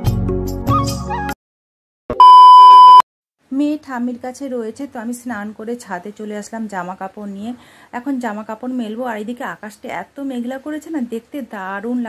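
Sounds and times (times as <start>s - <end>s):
high-pitched test-tone beep: 2.2s - 3.0s
woman speaking: 3.5s - 12.0s.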